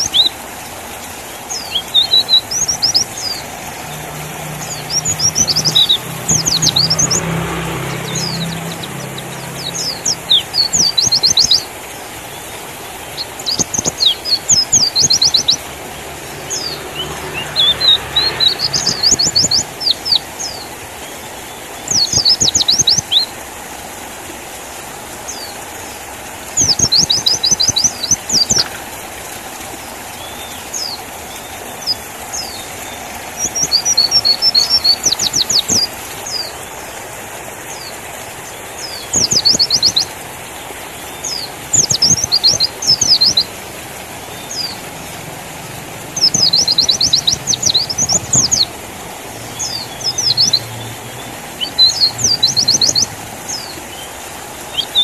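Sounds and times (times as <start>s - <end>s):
bird twittering chirps: 1.3s - 15.7s, 16.3s - 23.3s, 26.6s - 28.8s, 30.2s - 36.7s, 38.8s - 40.2s, 41.1s - 43.5s, 46.1s - 48.7s, 49.3s - 54.1s, 54.7s - 55.0s.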